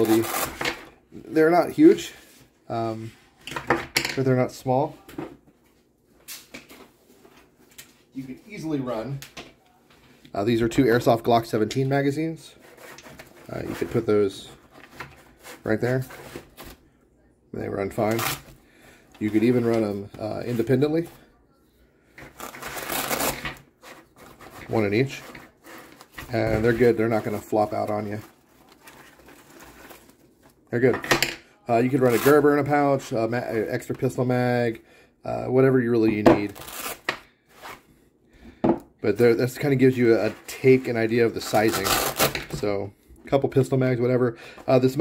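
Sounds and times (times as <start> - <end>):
nylon placard rustling: 22.1 - 30.8.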